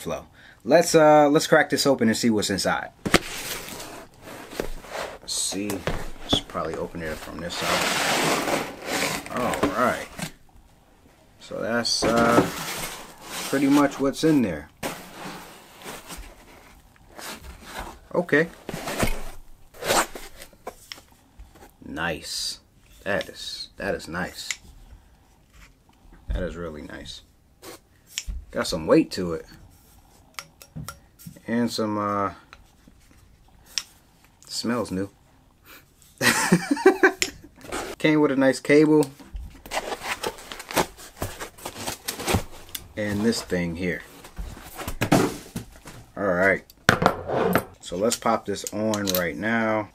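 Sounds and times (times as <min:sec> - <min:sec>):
microphone handling rustles: 0:03.0 - 0:10.4
foam rubbing: 0:03.2 - 0:10.4, 0:11.8 - 0:19.2.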